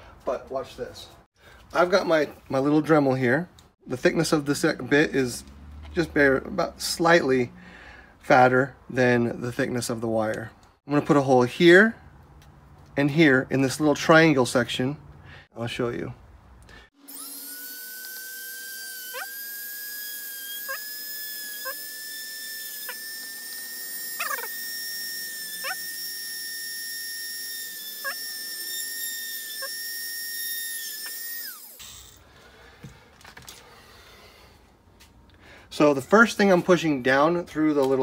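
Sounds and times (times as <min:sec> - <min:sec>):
rotary tool drilling: 0:17.0 - 0:32.2.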